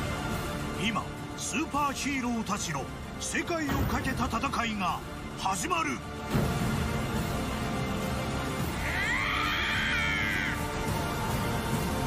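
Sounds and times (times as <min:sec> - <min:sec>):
dramatic trailer music: 0:00.0 - 0:12.0.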